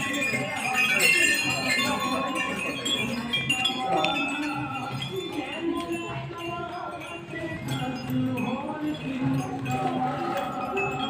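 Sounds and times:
background voices: 0.0 - 11.0
temple bells ringing: 0.0 - 11.0.

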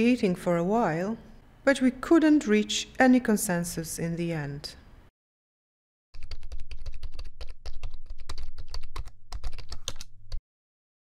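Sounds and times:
rapid keyboard typing: 6.2 - 10.4.

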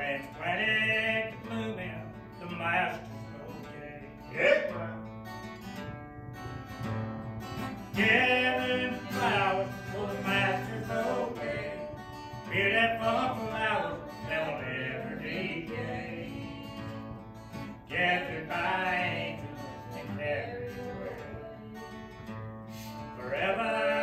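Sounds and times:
man singing: 0.0 - 5.1, 7.9 - 24.0
acoustic guitar strumming: 0.0 - 24.0.

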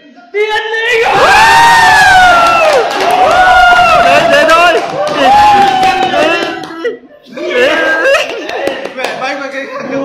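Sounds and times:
people shouting and cheering: 0.4 - 8.8
stadium crowd cheering: 1.0 - 6.7.

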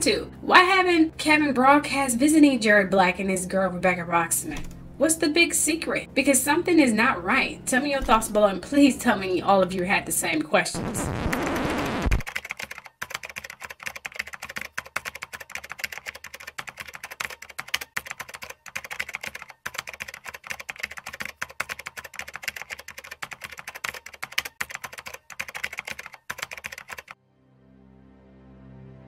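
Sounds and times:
soft music: 0.0 - 10.8, 27.2 - 29.0
keyboard typing: 11.3 - 27.2.

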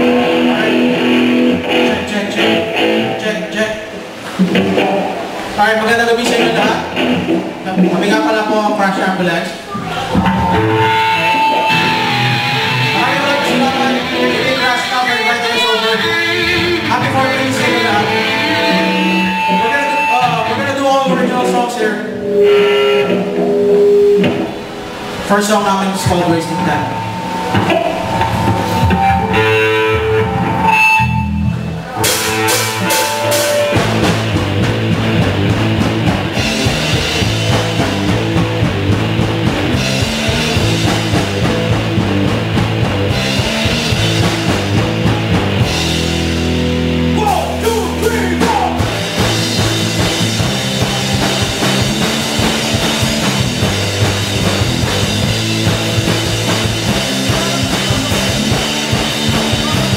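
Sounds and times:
live rock band playing: 0.0 - 5.6, 6.2 - 59.9
sharp drum hits: 26.0 - 30.6.

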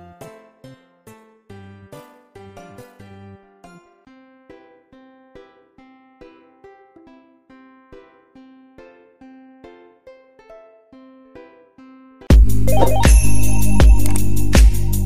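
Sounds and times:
plucked string instrument melody: 2.0 - 15.0.

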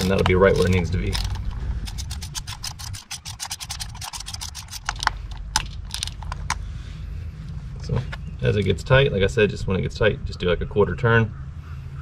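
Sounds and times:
ratchet clicking: 0.2 - 6.5.

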